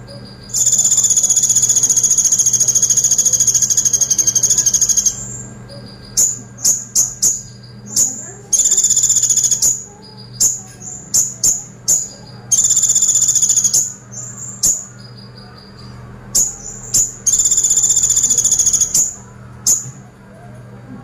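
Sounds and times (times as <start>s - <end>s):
bird singing high chips: 0.0s - 20.1s
bird fast rattling trills: 0.1s - 15.4s, 16.3s - 19.9s.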